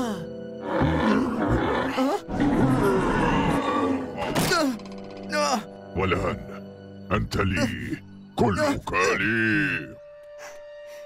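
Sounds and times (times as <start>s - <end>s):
dramatic background music: 0.0s - 11.0s
creature growling roar: 0.6s - 4.4s.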